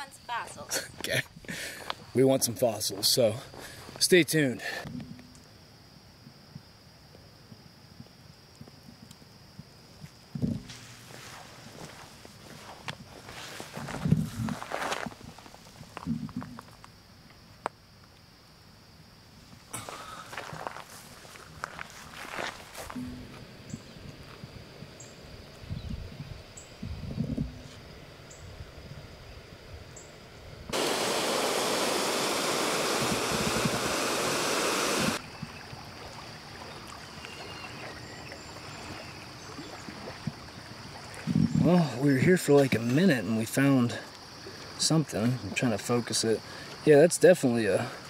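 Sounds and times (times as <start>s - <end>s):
outdoor ambience: 0.0s - 48.0s
water rushing through dam outlet: 30.8s - 35.2s.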